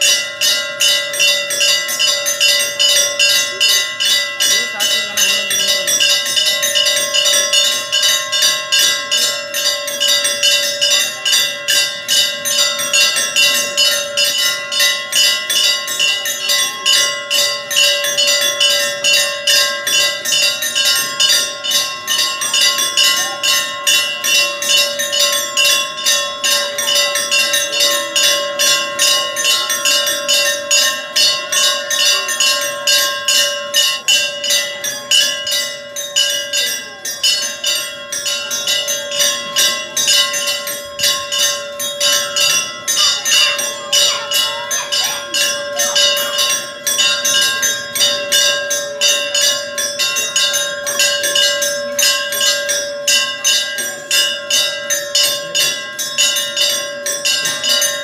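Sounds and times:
bell rung rapidly: 0.0 - 58.0.

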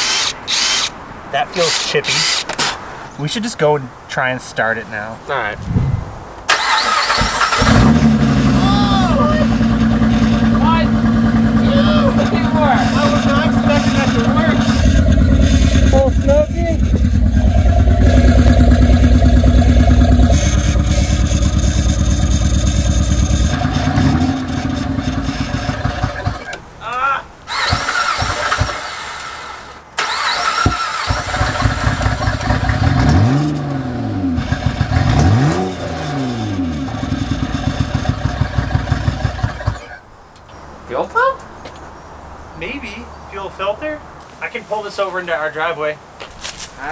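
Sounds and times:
car engine cranking: 6.4 - 26.6, 27.5 - 40.0.

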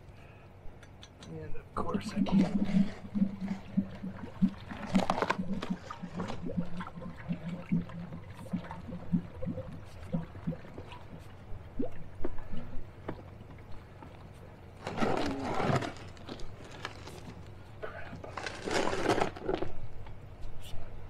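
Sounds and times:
water gurgling and sloshing: 1.7 - 20.0.

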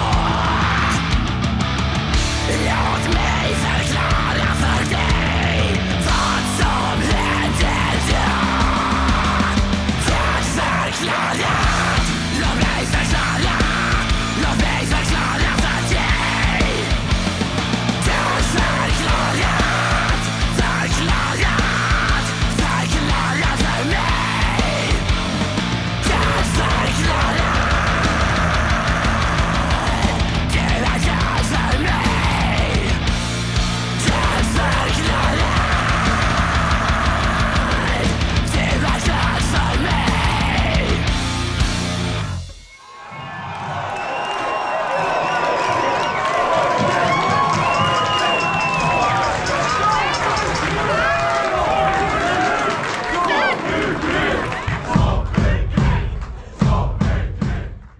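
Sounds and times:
heavy distorted metal music: 0.0 - 42.7
audience cheering and shouting: 0.0 - 57.8.

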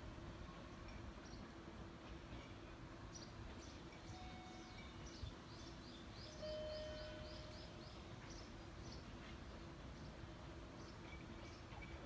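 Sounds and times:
small birds chirping: 0.7 - 12.0.

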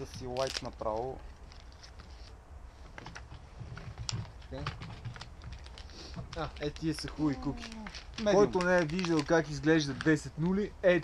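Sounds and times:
plastic packet clicking and crinkling: 0.1 - 2.1, 4.0 - 10.6
quiet speech: 6.2 - 9.2.

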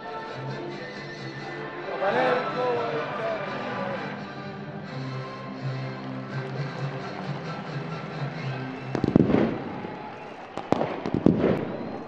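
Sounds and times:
background music: 0.0 - 11.9
sharp bangs and crackles: 8.9 - 12.0.

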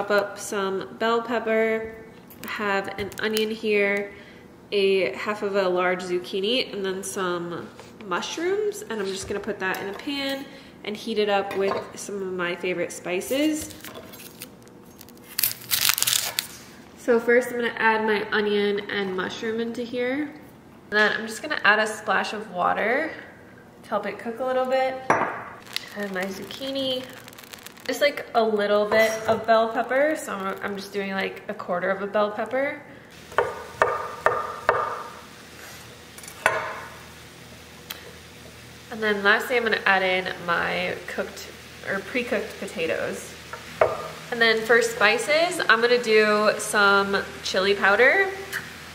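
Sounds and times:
onion crinkling and crunching: 13.4 - 16.8, 25.6 - 28.2, 29.0 - 31.0
vegetables sizzling in a frying pan: 25.6 - 31.4, 33.1 - 48.9.

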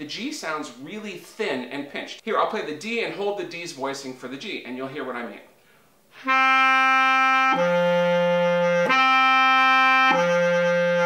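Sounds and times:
bass clarinet notes: 6.1 - 11.0.

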